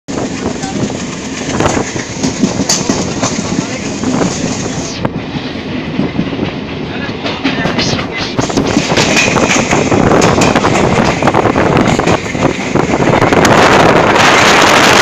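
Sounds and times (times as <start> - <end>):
train wheel clacks: 0.1 - 15.0
train wheels rolling on rail: 0.1 - 15.0.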